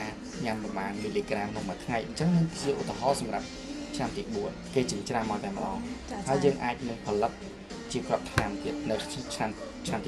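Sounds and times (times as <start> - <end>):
background music: 0.0 - 10.0
man talking: 0.0 - 10.0.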